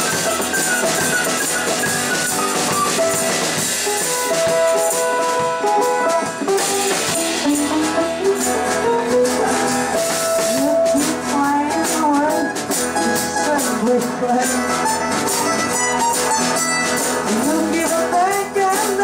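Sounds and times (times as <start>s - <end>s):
hand percussion: 0.0s - 19.0s
held melody notes: 0.0s - 19.0s
strummed guitar: 0.0s - 19.0s.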